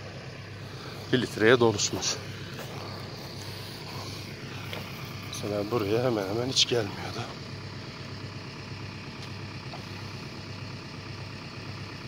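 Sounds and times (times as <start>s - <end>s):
motor humming: 0.0s - 8.2s, 8.8s - 10.5s.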